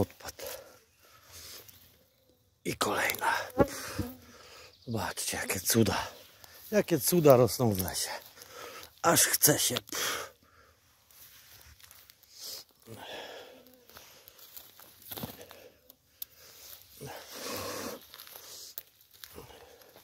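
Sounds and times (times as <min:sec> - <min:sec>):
rustling grass and leaves: 0:00.0 - 0:02.2, 0:02.8 - 0:20.0
footsteps through undergrowth: 0:05.3 - 0:09.8, 0:10.8 - 0:20.0.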